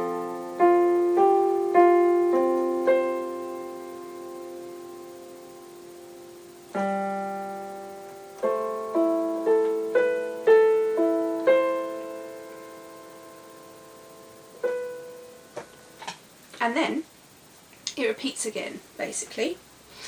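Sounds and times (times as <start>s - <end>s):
digital piano playing slowly: 0.0s - 16.0s.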